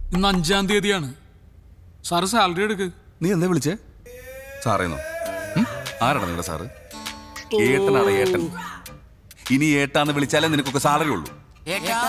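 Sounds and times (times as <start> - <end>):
man speaking: 4.1 - 8.6.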